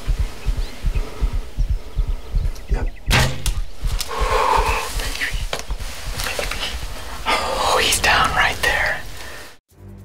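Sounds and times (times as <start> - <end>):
racing heartbeat thumps: 0.0 - 7.3.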